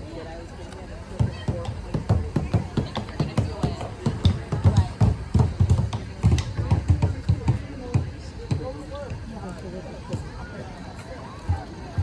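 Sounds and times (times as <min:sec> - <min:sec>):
faint voices: 0:00.0 - 0:12.0
footsteps on paved path: 0:00.0 - 0:12.0.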